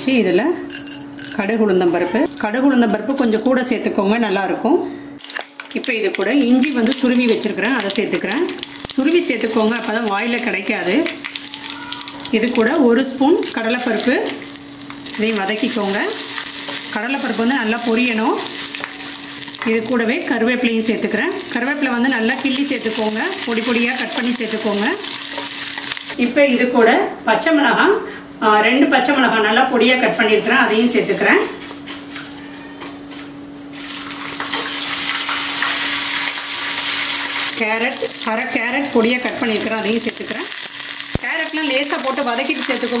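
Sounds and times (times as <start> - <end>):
woman talking: 0.0 - 0.6, 1.4 - 4.9, 5.7 - 11.2, 11.8 - 14.4, 15.2 - 16.2, 16.9 - 18.6, 19.6 - 25.1, 26.2 - 31.6, 37.6 - 40.6, 41.2 - 43.0
oil sizzling and crackling: 5.2 - 26.2, 33.7 - 43.0.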